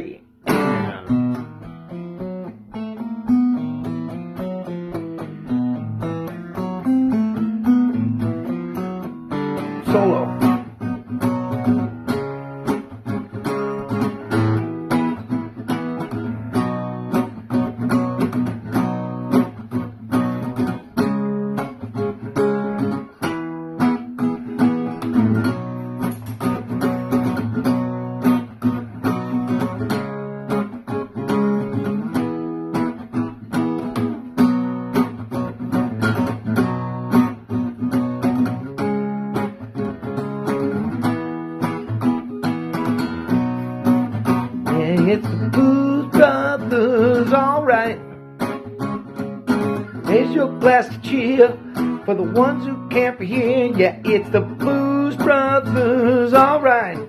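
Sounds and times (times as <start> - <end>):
acoustic guitar solo: 0.0 - 57.0.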